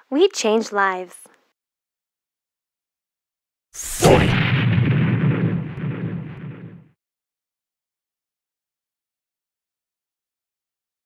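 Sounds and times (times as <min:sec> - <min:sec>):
deep crashing rumble: 0:03.8 - 0:06.9.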